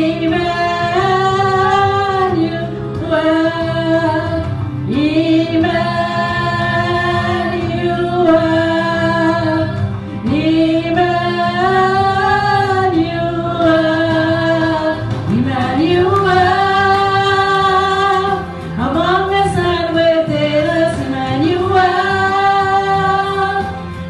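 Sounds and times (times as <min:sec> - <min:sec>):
keyboard accompaniment: 0:00.0 - 0:24.0
women singing worship song: 0:00.0 - 0:24.0.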